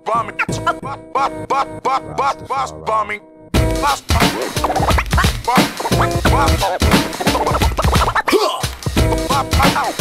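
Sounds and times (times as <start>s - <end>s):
hip-hop beat: 0.0s - 10.0s
turntable record scratching: 3.7s - 10.0s.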